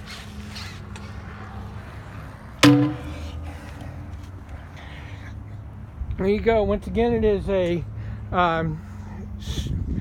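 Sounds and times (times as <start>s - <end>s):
metal coupler clanking on grate: 2.6s - 3.3s.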